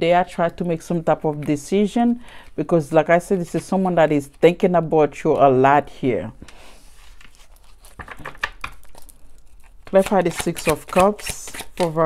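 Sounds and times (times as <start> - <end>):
woman speaking: 0.0 - 6.4, 9.9 - 12.0
cards flicking and rustling: 7.0 - 12.0.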